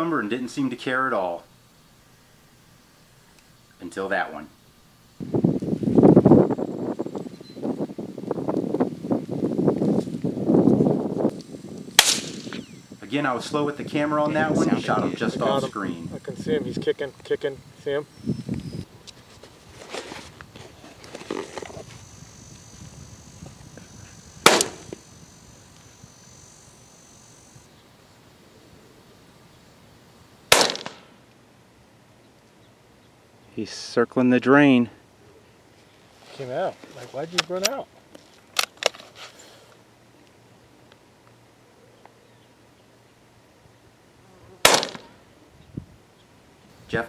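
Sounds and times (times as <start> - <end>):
rifle shots with echo: 12.0 - 12.5, 24.4 - 24.9, 30.5 - 31.1, 44.7 - 45.1.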